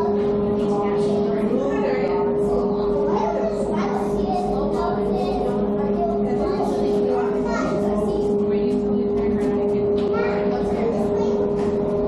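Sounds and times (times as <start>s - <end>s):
chatter of visitors: 0.0s - 12.0s
children's voices: 0.0s - 12.0s
low hum: 0.0s - 12.0s.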